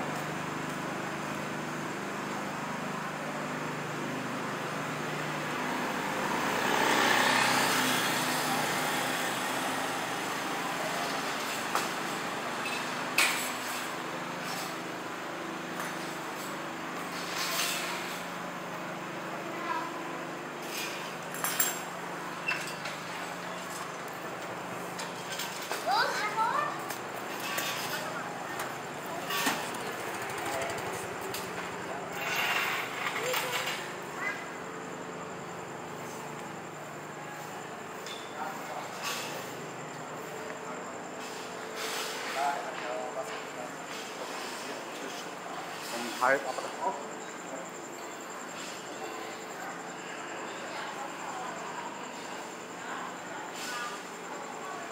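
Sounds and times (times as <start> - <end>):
people talking: 25.8 - 32.2, 40.1 - 54.9.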